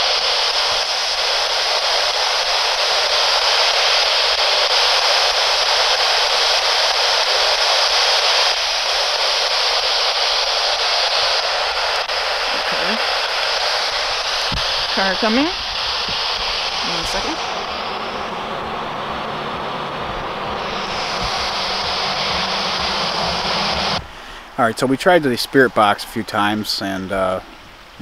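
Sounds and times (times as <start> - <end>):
radio static hiss: 0.0 - 28.0.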